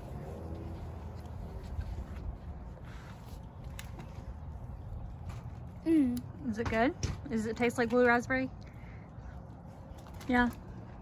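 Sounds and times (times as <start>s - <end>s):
wind rumble on microphone: 0.0s - 5.8s.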